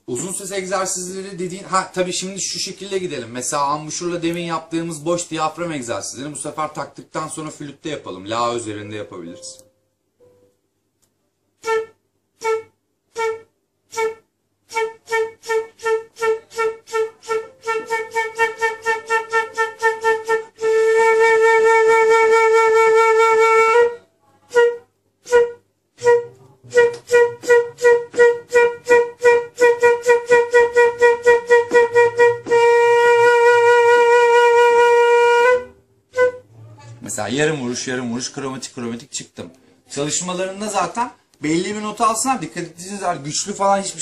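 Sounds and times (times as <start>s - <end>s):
flute long held note: 11.6s - 37.0s
flute playing short tongued notes: 11.6s - 37.0s.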